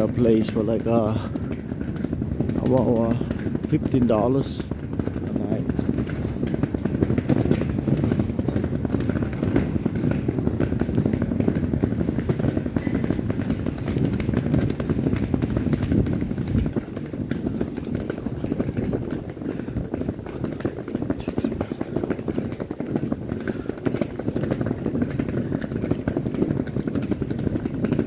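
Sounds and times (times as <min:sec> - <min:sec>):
low uneven rumbling: 0:00.0 - 0:28.0.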